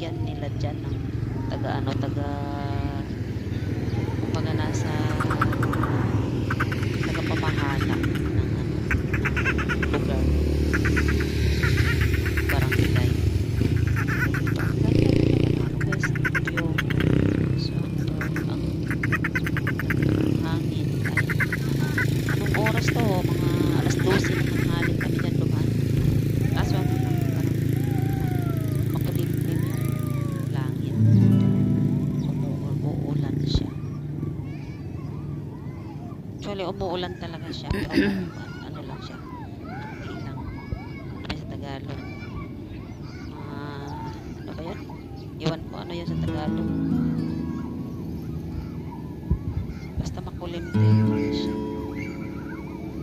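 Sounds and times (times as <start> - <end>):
people talking indistinctly: 0.0 - 10.4, 12.0 - 14.0, 14.6 - 18.9, 19.9 - 53.0.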